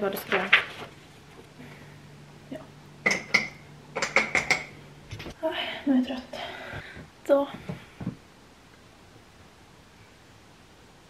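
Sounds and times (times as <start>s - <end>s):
hard objects clinking and knocking: 3.0s - 5.3s.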